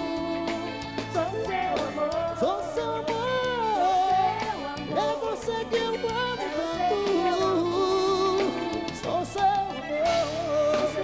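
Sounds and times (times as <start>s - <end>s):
live band music: 0.0s - 11.0s
man singing: 0.0s - 11.0s.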